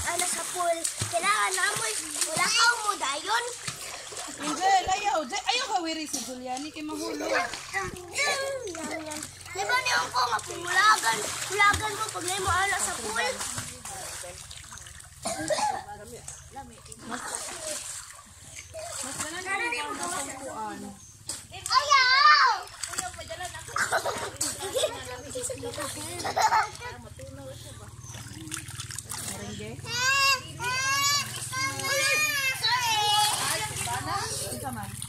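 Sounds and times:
children calling and chattering: 0:00.0 - 0:35.0
water splashing: 0:00.0 - 0:35.0.

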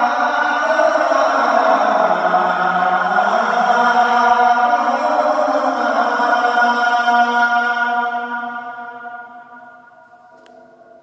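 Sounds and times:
man singing call to prayer: 0:00.0 - 0:09.9.

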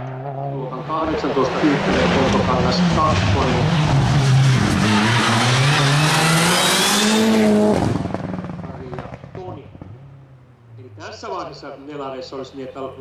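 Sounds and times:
rally car engine accelerating: 0:00.0 - 0:10.1.

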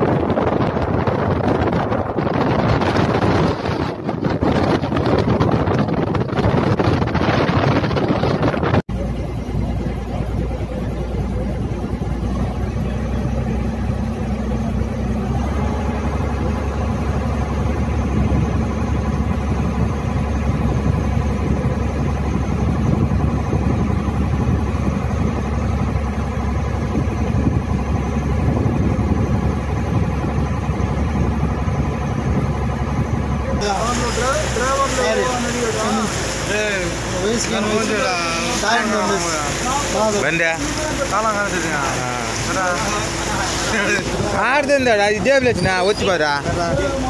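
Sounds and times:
boat engine low drone: 0:00.0 - 0:47.0.

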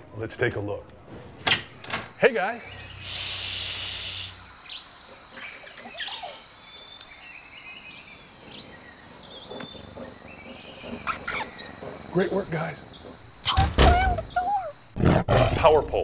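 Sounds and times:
faint chirping: 0:01.5 - 0:15.0
loud hiss: 0:02.8 - 0:04.6.

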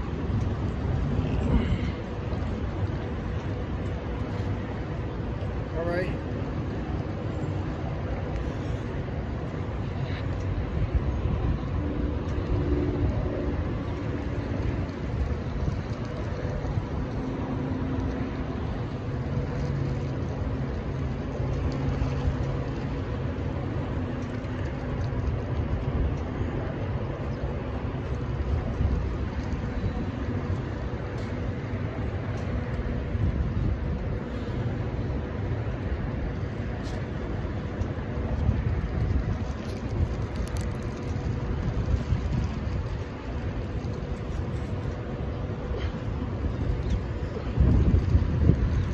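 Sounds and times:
low rumble of road traffic: 0:00.0 - 0:48.9
vehicle engine hum: 0:00.0 - 0:48.9.

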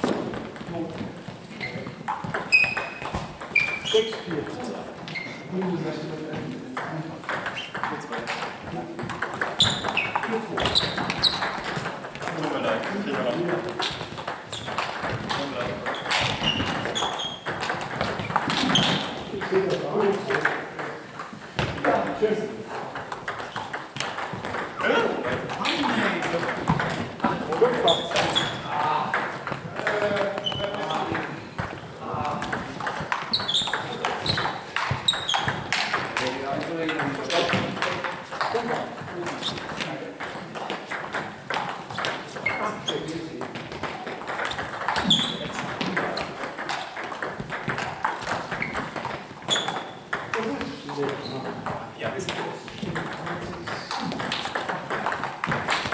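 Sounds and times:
table tennis ball clicking: 0:06.8 - 0:31.8, 0:32.4 - 0:42.6, 0:43.4 - 0:50.4, 0:52.3 - 0:55.9.

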